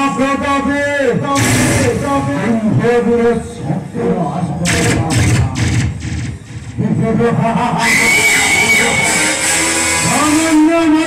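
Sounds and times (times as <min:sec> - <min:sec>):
stage music with percussion: 0:01.4 - 0:02.5, 0:04.7 - 0:06.8
percussion crashes: 0:01.4 - 0:02.7, 0:04.7 - 0:07.0.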